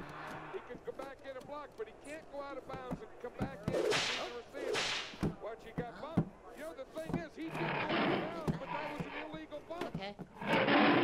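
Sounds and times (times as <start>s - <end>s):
hissing whoosh effects: 3.8s - 5.2s.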